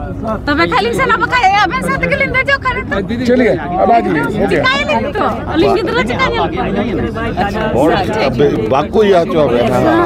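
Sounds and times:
overlapping crowd voices: 3.9s - 10.0s.

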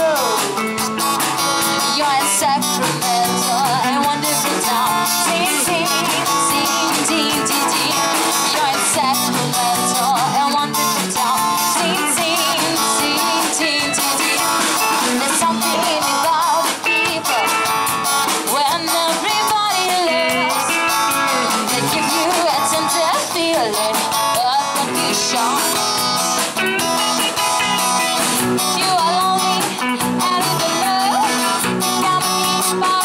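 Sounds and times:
live pop-rock band playing: 0.0s - 33.0s
woman singing into microphone: 1.7s - 17.7s, 18.4s - 26.0s, 28.6s - 33.0s.

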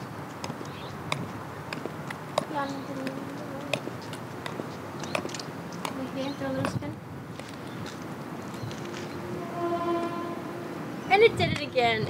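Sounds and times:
faint outdoor background noise: 0.0s - 12.0s
vehicle horn long note: 9.2s - 11.1s.

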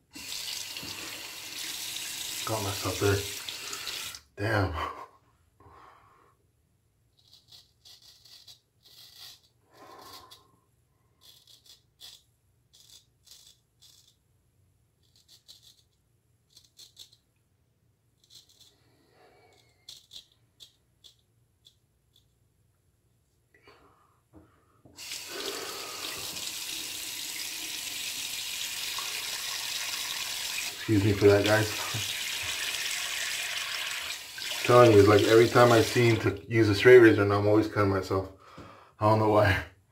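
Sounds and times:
water tap running: 0.0s - 4.2s, 25.0s - 36.4s
razor scraping stubble: 7.1s - 10.5s, 11.2s - 14.2s, 15.0s - 17.3s, 18.2s - 22.3s, 34.7s - 36.3s.

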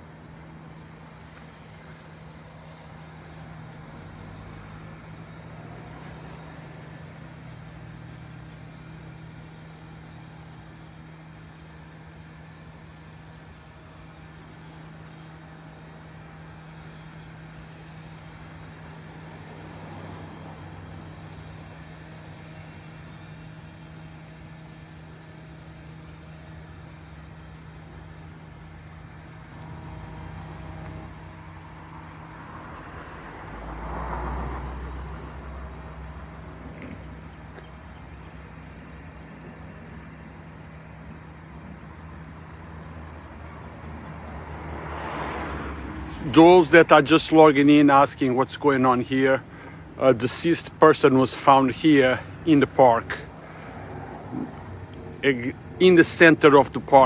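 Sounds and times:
steady low hum: 0.0s - 44.5s, 45.9s - 57.0s
distant traffic noise: 0.0s - 57.0s
vehicle passing by: 3.1s - 8.5s, 29.4s - 37.6s, 43.0s - 57.0s.

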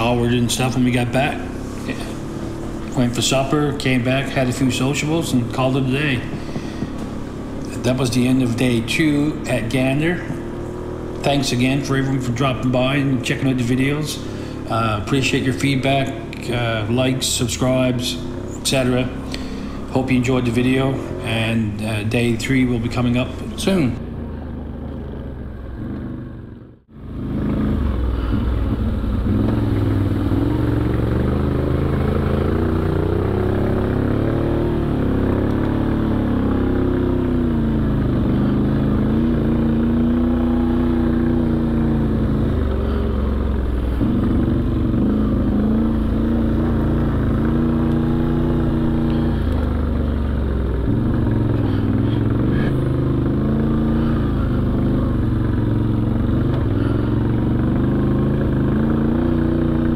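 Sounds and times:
off-road vehicle engine under load: 0.0s - 59.9s.

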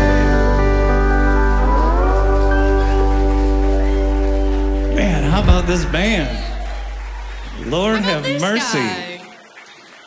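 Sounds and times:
steady bass: 0.0s - 8.4s.

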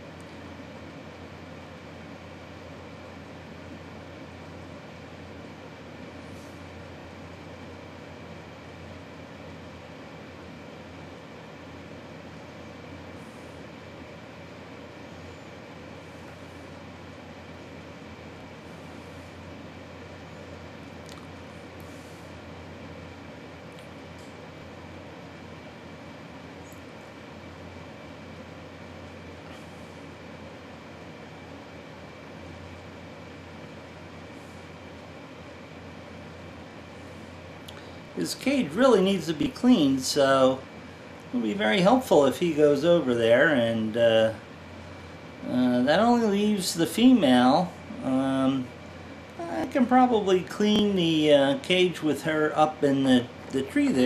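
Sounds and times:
faint high whine: 0.0s - 54.0s
low mechanical hum and hiss: 0.0s - 54.0s.

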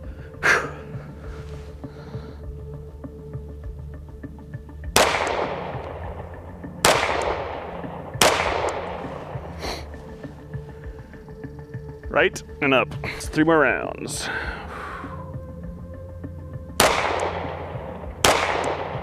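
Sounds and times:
quiet background music: 0.0s - 19.0s
pistol shots echoing: 4.9s - 9.5s, 16.8s - 19.0s.

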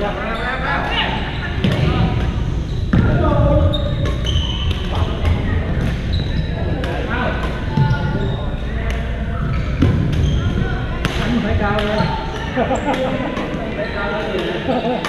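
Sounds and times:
echoing voices: 0.0s - 15.0s
sneakers squeaking on gym floor: 0.3s - 15.0s
rackets striking shuttlecock: 11.0s - 13.6s.

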